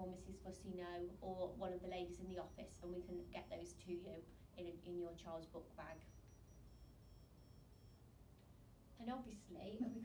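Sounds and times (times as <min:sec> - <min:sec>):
faint high-pitched electronic beeping: 0:01.8 - 0:04.1, 0:05.6 - 0:08.1, 0:09.3 - 0:10.0.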